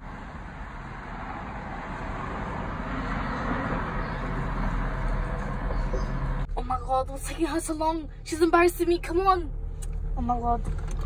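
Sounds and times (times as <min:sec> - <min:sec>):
road traffic passing: 0:00.0 - 0:11.0.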